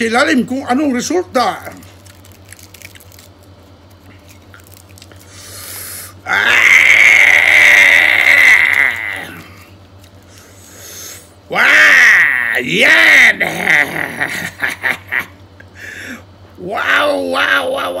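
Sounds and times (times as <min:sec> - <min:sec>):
steady low hum: 0:00.0 - 0:18.0
crackles of fish skin pulled apart: 0:02.0 - 0:05.4
man's drawn-out vocal exclamation: 0:11.5 - 0:14.1, 0:16.6 - 0:18.0.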